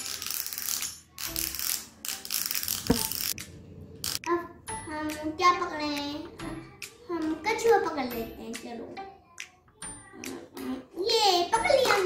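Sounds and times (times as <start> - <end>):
toy fishing reel motor whirring: 0.0 - 3.4.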